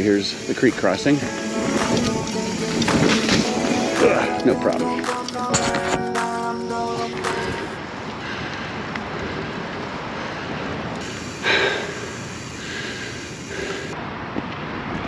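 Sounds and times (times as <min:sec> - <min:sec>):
background music: 0:00.0 - 0:07.8
bike tyres on dirt trail: 0:00.0 - 0:14.0.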